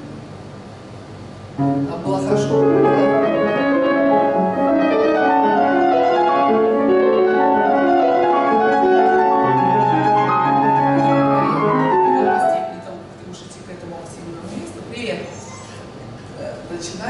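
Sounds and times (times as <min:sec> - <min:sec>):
grand piano playing: 0:01.5 - 0:13.1.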